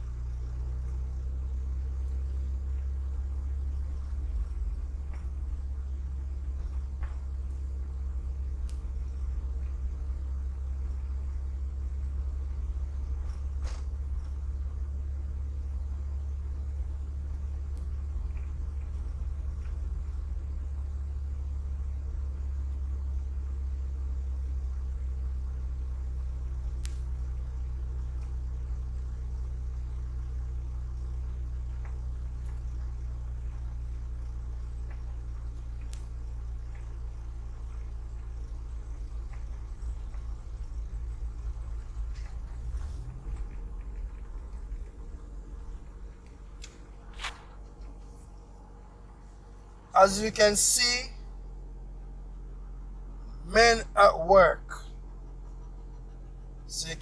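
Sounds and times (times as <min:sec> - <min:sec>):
car engine and road rumble: 0:00.0 - 0:57.0
faint ticks: 0:08.5 - 0:09.9, 0:26.7 - 0:28.6, 0:30.8 - 0:48.6.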